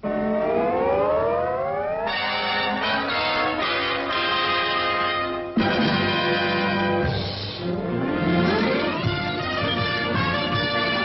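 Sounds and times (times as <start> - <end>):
siren-like rising tone: 0.0 - 3.0.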